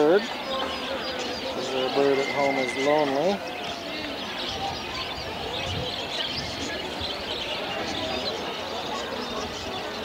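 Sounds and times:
birds chirping: 0.0s - 10.0s
faint murmur of voices: 0.0s - 10.0s.

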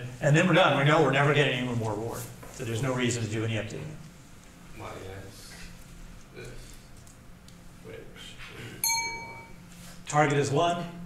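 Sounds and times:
bright clink of hard object: 8.8s - 9.6s.

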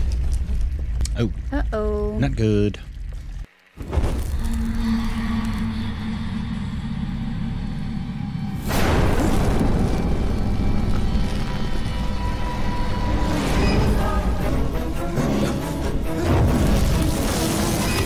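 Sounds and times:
eerie horror music drone: 4.2s - 18.0s.

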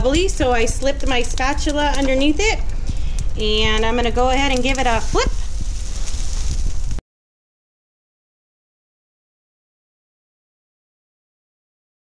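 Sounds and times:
low kitchen rumble: 0.0s - 7.0s.

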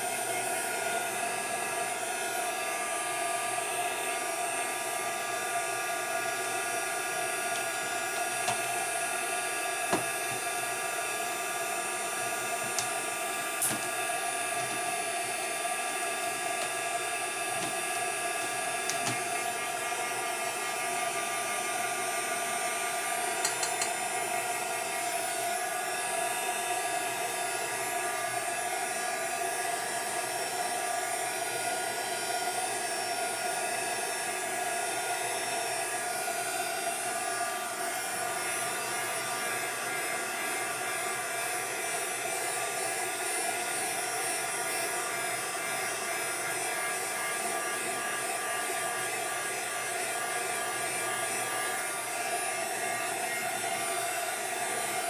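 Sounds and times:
heat tool blowing air: 0.0s - 55.0s.

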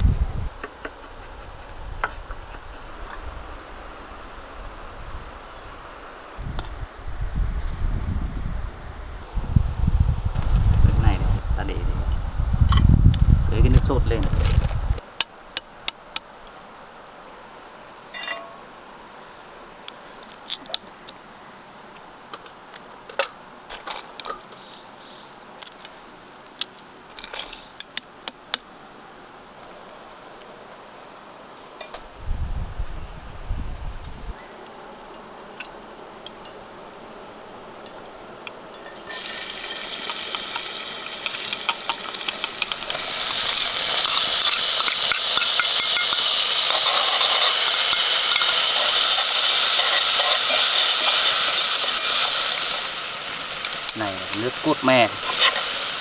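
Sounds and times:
food sizzling in hot oil: 38.7s - 56.0s.

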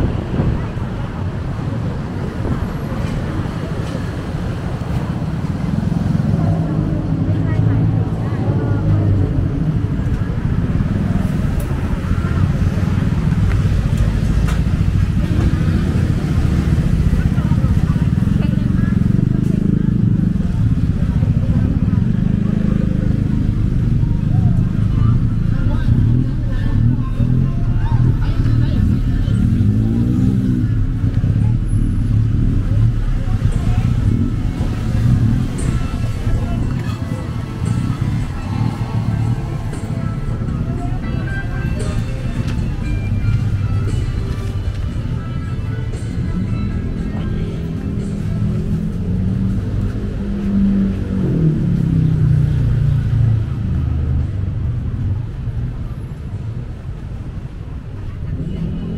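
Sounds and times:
people talking: 0.0s - 58.9s
road traffic rumble: 0.0s - 58.9s.

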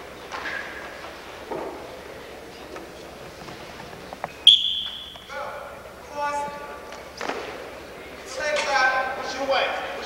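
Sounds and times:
murmur of a gym: 0.0s - 10.0s.

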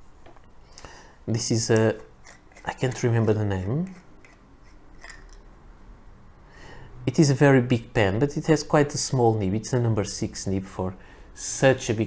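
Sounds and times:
pen cap rubbing: 1.8s - 5.4s.

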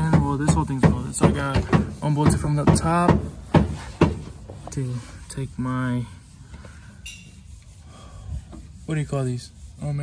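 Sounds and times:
rubbing and scraping handling noise: 0.0s - 10.0s.

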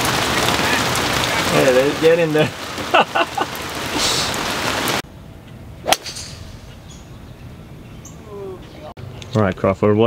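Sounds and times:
heavy rain hissing: 0.0s - 5.0s
sharp snap: 5.9s - 6.4s.

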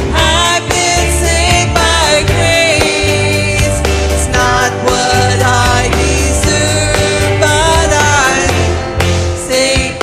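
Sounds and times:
band accompaniment: 0.0s - 10.0s
person singing: 0.0s - 10.0s.

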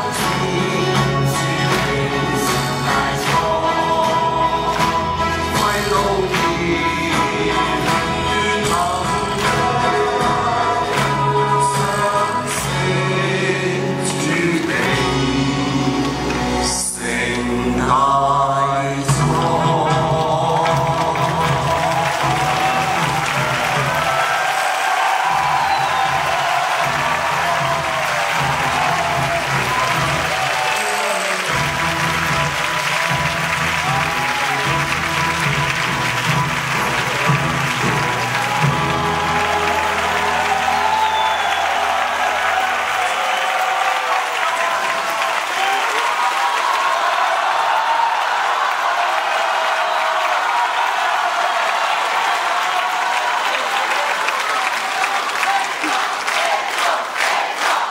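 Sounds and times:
audience applauding: 0.0s - 17.5s, 19.4s - 57.9s
band playing instrumental music: 0.0s - 24.3s, 25.2s - 44.0s.

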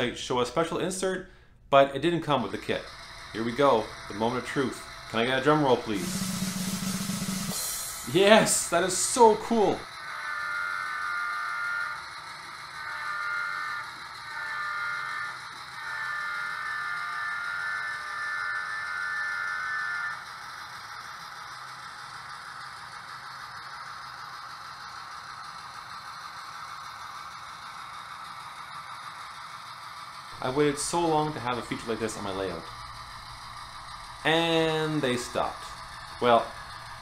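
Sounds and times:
model train running on track: 0.0s - 37.0s
model train horn blasts: 12.8s - 20.2s.

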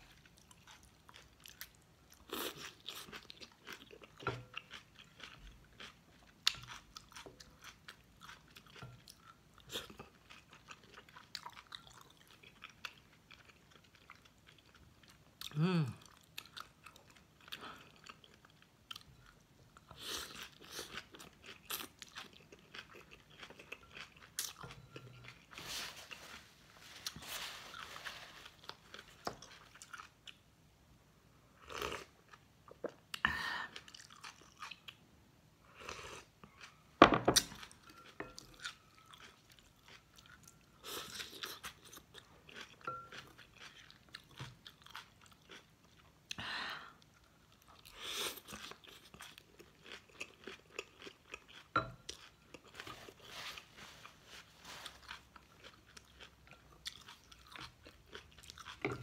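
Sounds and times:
person chewing and slurping noodles: 0.1s - 30.4s, 37.5s - 46.1s, 47.0s - 59.0s.

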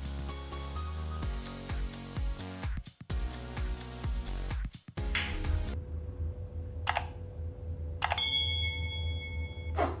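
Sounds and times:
steady low hum: 5.3s - 9.7s
bell-like ding: 8.1s - 9.8s.

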